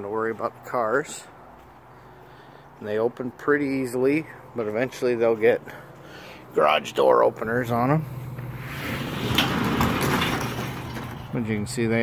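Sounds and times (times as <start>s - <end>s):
garage door rollers rattling: 8.7s - 11.5s.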